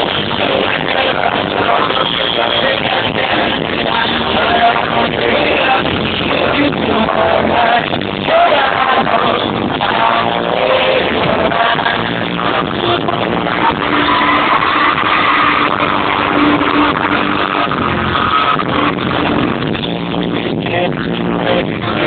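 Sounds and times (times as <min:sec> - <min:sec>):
muffled live pop band: 0:00.0 - 0:22.0.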